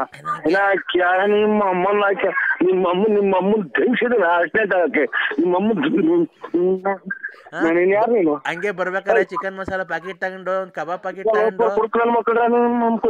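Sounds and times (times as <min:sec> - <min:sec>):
person talking rapidly: 0:00.0 - 0:13.0.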